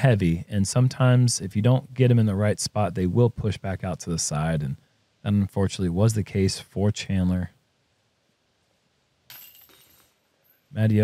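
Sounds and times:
metal chains rattling: 0:09.3 - 0:10.7.

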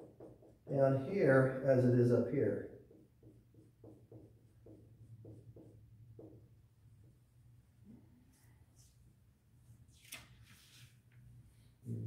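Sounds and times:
marker rubbing on whiteboard: 0:00.0 - 0:01.1, 0:02.6 - 0:07.3
low steady hum: 0:11.3 - 0:12.0.

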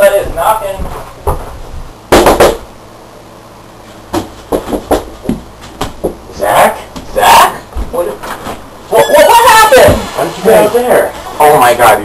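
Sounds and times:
knocking on a door: 0:02.1 - 0:02.7, 0:04.1 - 0:06.2.

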